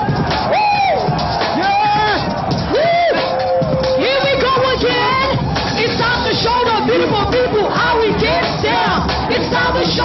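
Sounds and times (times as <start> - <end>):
crowd noise: 0.0 - 10.0
hip-hop music with singing voice: 0.0 - 10.0.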